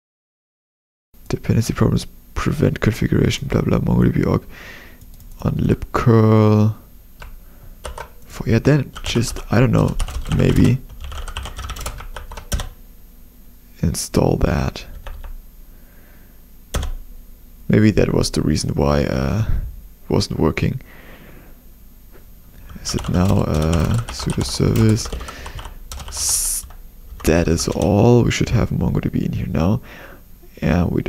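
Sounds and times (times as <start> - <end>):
computer keyboard typing: 7.2 - 8.3, 8.9 - 12.8, 14.9 - 15.4, 16.7 - 17.0, 22.7 - 28.0.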